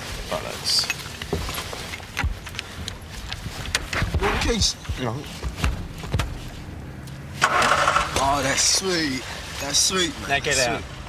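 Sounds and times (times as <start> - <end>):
voices: 0.0 - 11.0
car engine starting and running: 0.1 - 11.0
loud rush of noise: 4.1 - 9.5.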